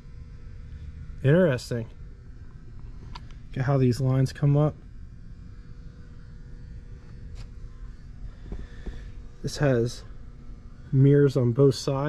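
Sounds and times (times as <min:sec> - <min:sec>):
faint hum: 0:00.0 - 0:12.0
low room rumble: 0:00.0 - 0:12.0.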